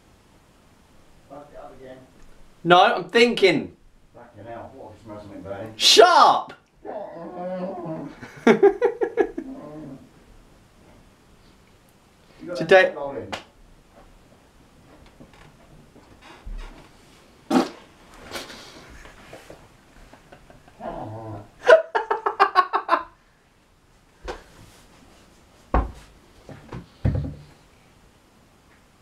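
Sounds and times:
man growling: 6.8 - 8.3, 9.3 - 10.1, 20.7 - 21.7
young man laughing: 8.1 - 9.6, 20.0 - 23.1.

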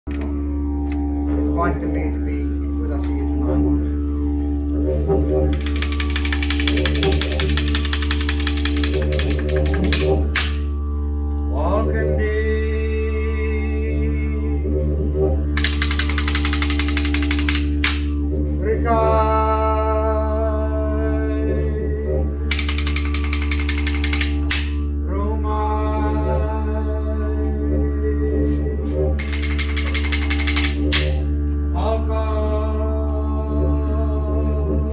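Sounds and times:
didgeridoo droning: 0.0 - 34.9
long rising calls: 0.1 - 34.9
boomerangs clapped together: 5.5 - 10.6, 15.6 - 18.1, 22.5 - 24.8, 29.2 - 31.2.

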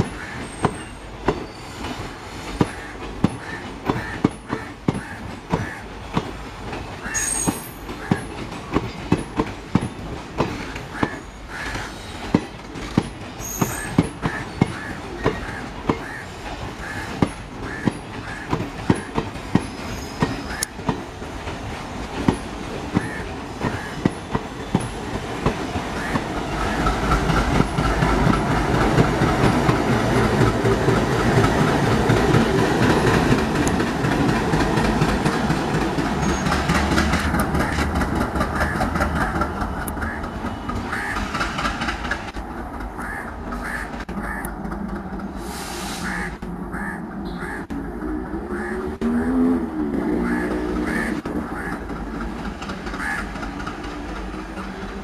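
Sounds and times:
train wheels clicking over rail joints: 0.0 - 46.9, 47.6 - 55.0
diesel locomotive engine rumble: 0.0 - 55.0.

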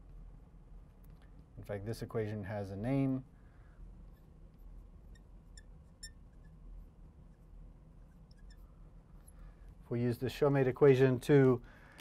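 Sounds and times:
room hum: 0.0 - 12.0
marker squeaking on glass: 4.0 - 9.4.

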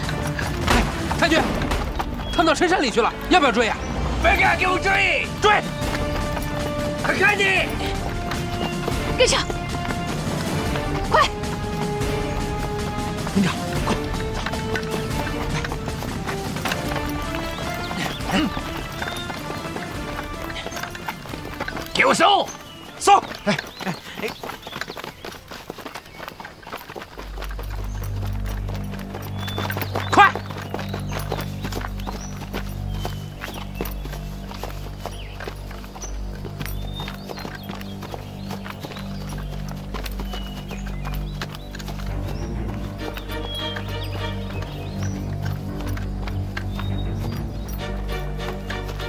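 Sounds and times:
footsteps through undergrowth: 0.0 - 49.0.

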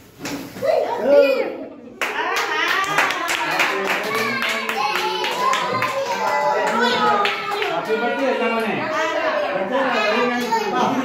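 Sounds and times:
group clapping in rhythm: 2.0 - 8.0.

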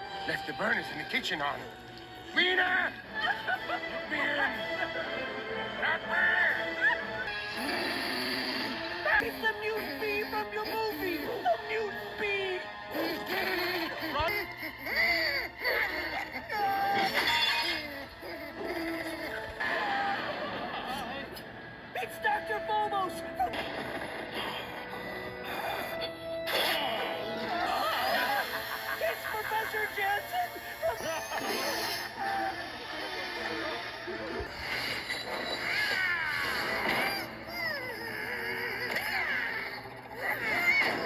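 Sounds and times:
cartoon sound effects: 26.4 - 28.2.

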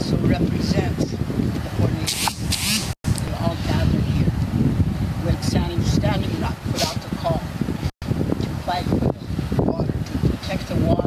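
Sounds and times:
hissing rustles: 2.1 - 3.2
person speaking: 3.2 - 4.3, 5.2 - 7.6.

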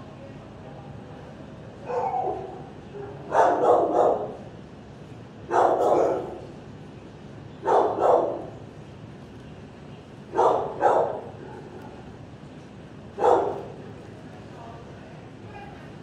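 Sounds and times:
dog barking: 1.8 - 4.4, 5.5 - 6.4, 7.6 - 8.5, 10.3 - 11.7, 13.2 - 13.8.

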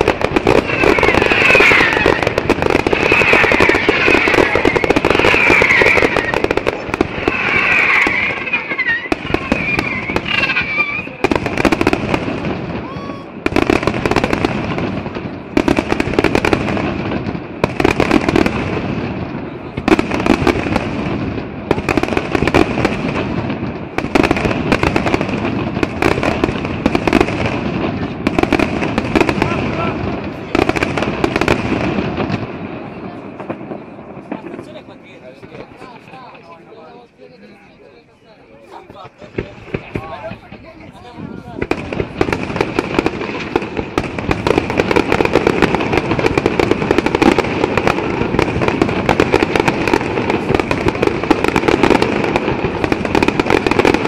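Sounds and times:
fireworks bursting: 0.0 - 54.0.

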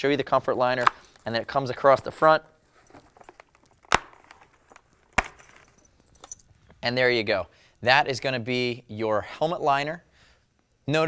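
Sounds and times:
snap fasteners popping open: 0.8 - 1.2.

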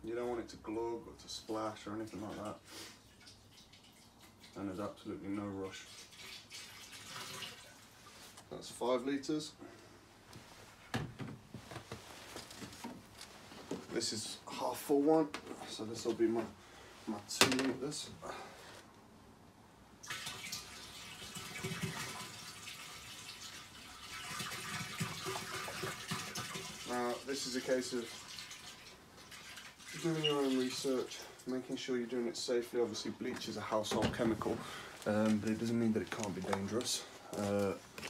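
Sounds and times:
liquid trickling into water: 2.3 - 5.0, 5.6 - 8.3, 20.0 - 31.6.

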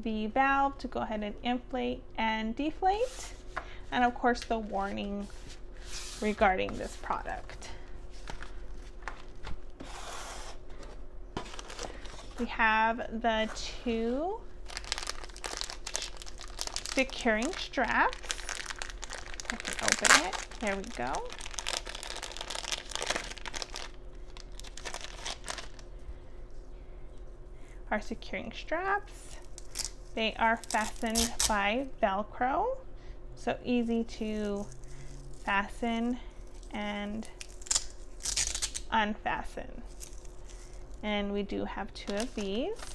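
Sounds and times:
plastic crinkling and rustling: 11.4 - 12.5, 14.6 - 25.9, 39.9 - 41.0, 42.0 - 42.9.

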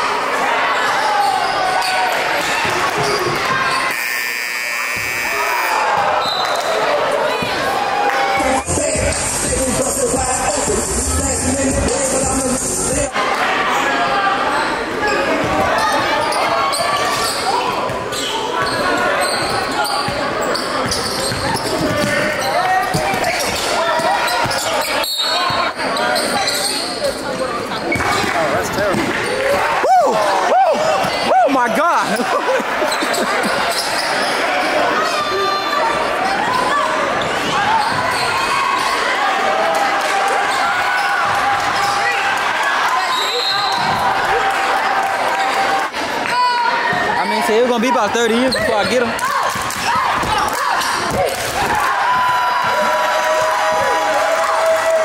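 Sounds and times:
crowd voices: 0.0 - 55.0.

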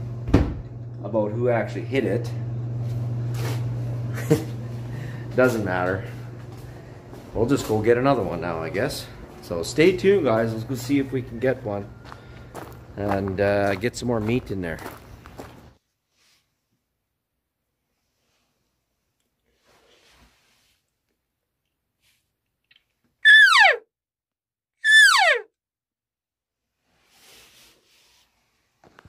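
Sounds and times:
elk call whine: 23.2 - 23.8, 24.8 - 25.5.

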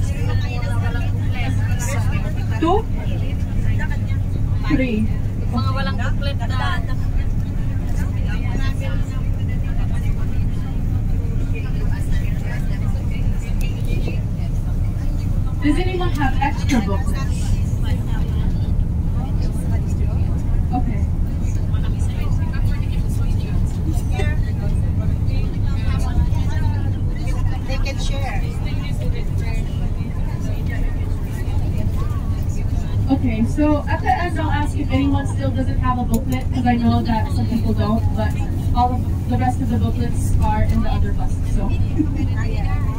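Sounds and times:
bus engine and road rumble: 0.0 - 42.9
passengers talking: 0.0 - 42.9.

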